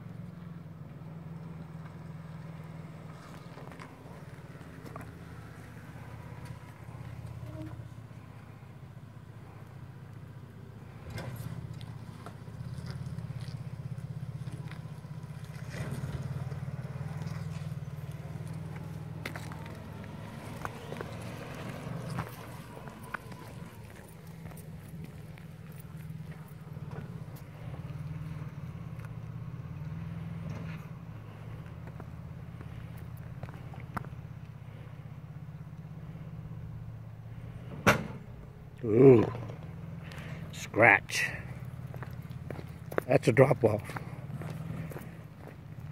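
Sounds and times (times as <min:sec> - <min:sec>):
truck engine running low: 0:00.0 - 0:45.9.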